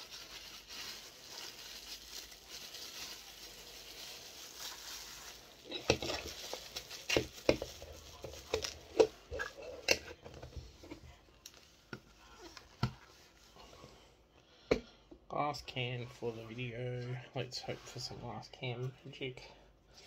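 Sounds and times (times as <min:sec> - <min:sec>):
plastic bag crinkling: 0:00.0 - 0:12.6.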